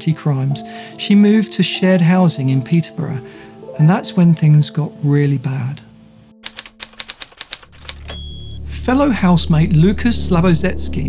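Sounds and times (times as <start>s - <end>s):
typewriter keys striking: 6.4s - 8.5s
high bell ding: 8.0s - 8.7s.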